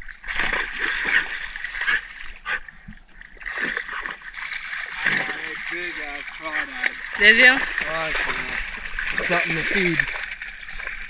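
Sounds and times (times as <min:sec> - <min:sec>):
dogs splashing through water: 0:00.0 - 0:11.0.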